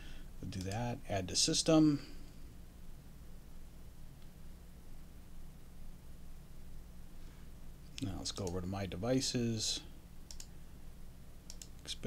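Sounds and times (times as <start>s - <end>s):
steady low hum: 0.0s - 12.0s
computer mouse clicking: 10.3s - 10.5s, 11.5s - 11.9s.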